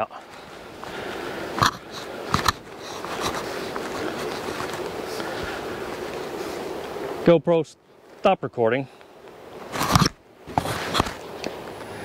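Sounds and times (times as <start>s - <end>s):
footsteps through dry grass: 0.0s - 7.0s.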